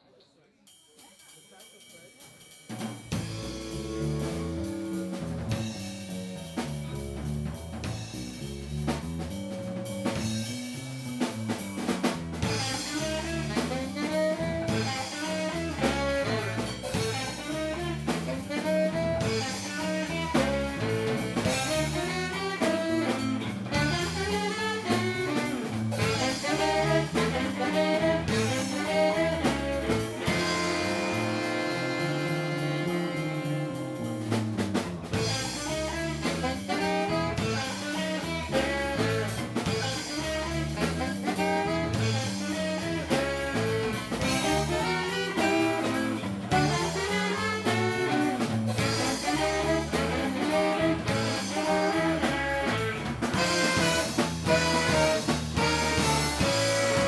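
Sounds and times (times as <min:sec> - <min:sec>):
rock band playing instrumental: 0:02.6 - 0:57.0
drum strikes: 0:02.7 - 0:57.0
saxophone melody: 0:03.2 - 0:07.1, 0:12.4 - 0:57.0.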